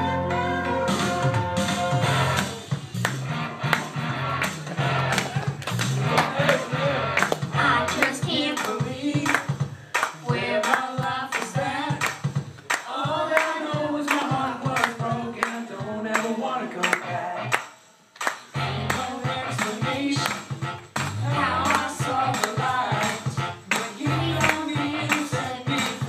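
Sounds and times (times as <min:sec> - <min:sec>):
upbeat backing track with drum beat: 0:00.0 - 0:26.0.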